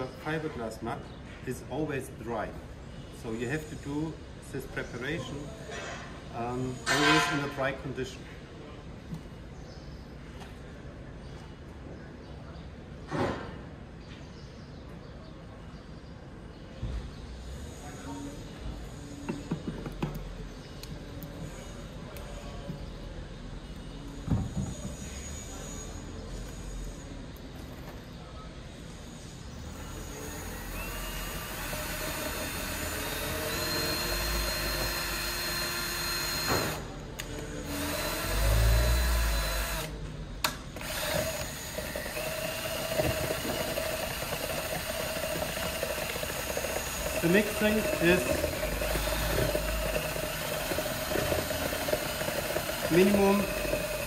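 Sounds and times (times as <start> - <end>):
cordless drill mixing: 29.7 - 36.9, 37.6 - 40.0, 40.8 - 54.0
resin pouring: 42.0 - 54.0.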